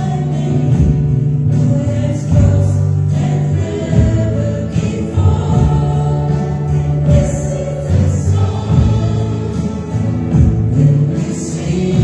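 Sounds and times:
guitar: 0.0s - 12.0s
sustained bass line: 0.0s - 12.0s
voices singing gospel melody: 0.0s - 12.0s.

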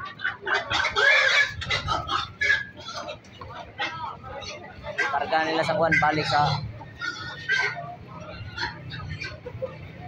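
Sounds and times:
pig squealing: 0.0s - 9.8s.

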